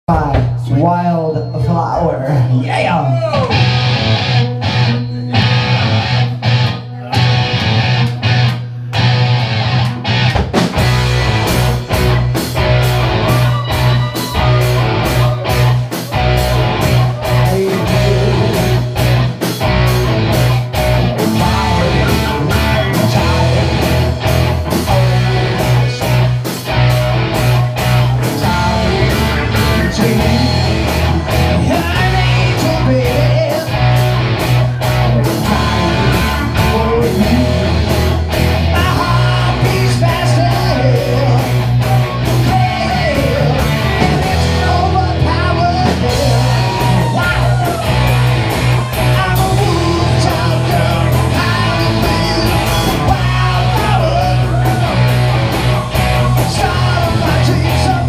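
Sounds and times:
live rock band playing: 0.1 - 58.0
electric guitar: 2.4 - 58.0
drums and cymbals: 10.1 - 58.0.

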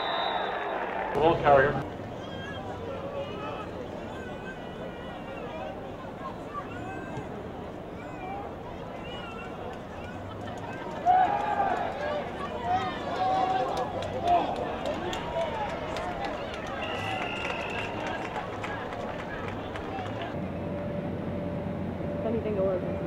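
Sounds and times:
players shouting: 0.0 - 20.4
outdoor stadium noise: 0.0 - 23.0.

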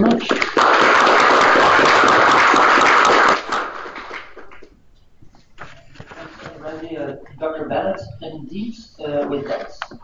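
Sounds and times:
audience applause: 0.2 - 4.6.

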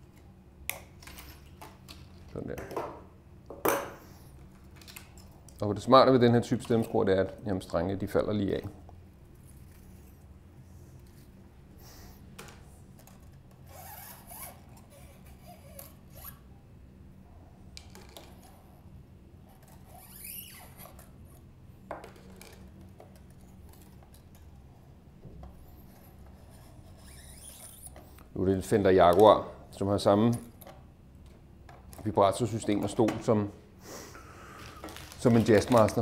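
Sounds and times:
low steady hum: 0.0 - 36.0.

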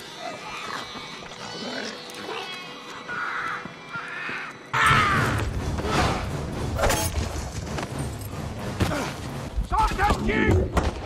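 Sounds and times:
rasping creature call: 0.0 - 5.2.

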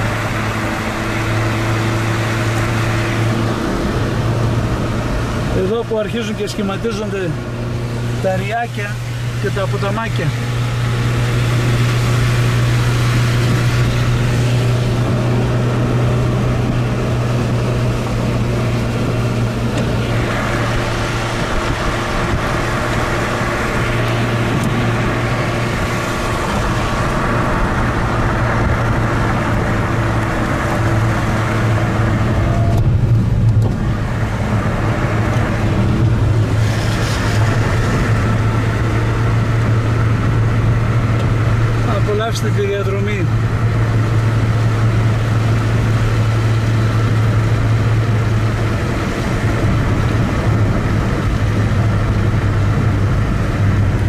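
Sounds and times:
car engine hum inside cabin: 0.0 - 54.0
tyre and road noise: 0.0 - 54.0.

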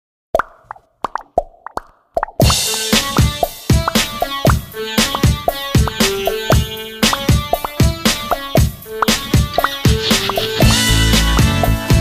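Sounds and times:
short pops bending upward: 0.4 - 10.5.

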